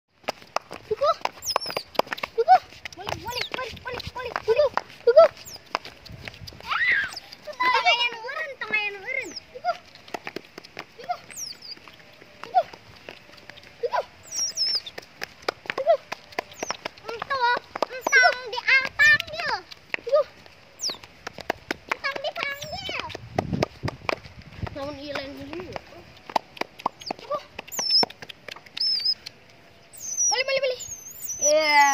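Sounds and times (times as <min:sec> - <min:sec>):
baby otters squeaking: 0:01.4 - 0:02.3, 0:05.1 - 0:08.2, 0:11.1 - 0:14.9, 0:16.4 - 0:16.8, 0:18.0 - 0:18.4, 0:22.5 - 0:23.0, 0:26.8 - 0:31.9.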